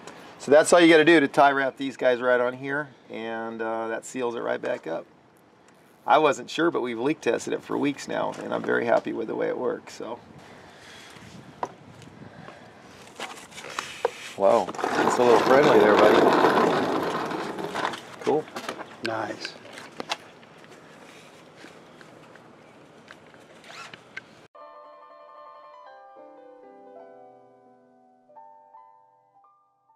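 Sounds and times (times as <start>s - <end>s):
outdoor background noise: 0.0s - 24.5s
handling noise: 13.0s - 24.4s
rising scrape: 13.4s - 18.2s
keyboard music: 24.6s - 29.9s.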